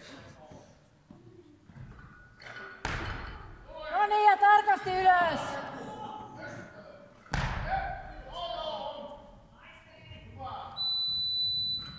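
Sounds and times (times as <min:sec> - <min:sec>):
high electronic beep: 0:10.8 - 0:11.9.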